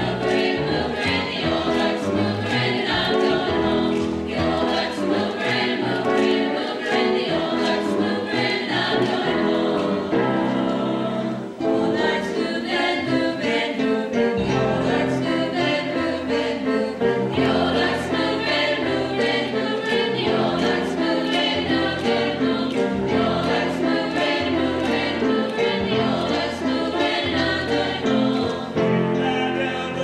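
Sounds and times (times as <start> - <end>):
chorus singing in parts: 0.0 - 30.0.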